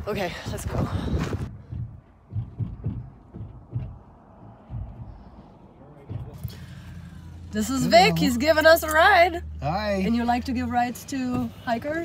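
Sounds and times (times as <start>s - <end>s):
wind buffeting truck bed: 0.0s - 12.0s
truck bed thumps and rumble: 0.6s - 6.9s, 10.2s - 12.0s.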